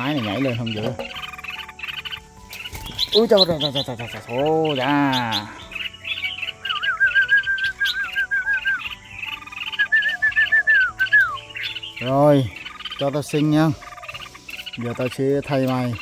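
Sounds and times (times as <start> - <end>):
bird warbling calls: 0.0 - 16.0
high bird chirps: 0.0 - 16.0.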